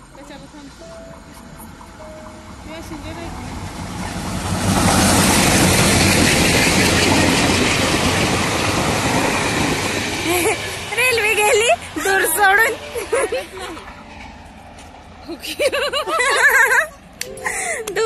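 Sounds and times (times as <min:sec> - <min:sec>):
passenger train passing at speed: 0:00.0 - 0:18.0
wheels and coaches rattling: 0:00.0 - 0:18.0.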